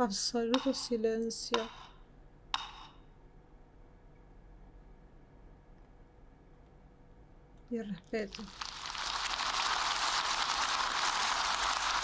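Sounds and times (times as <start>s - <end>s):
audience applauding: 8.6s - 12.0s.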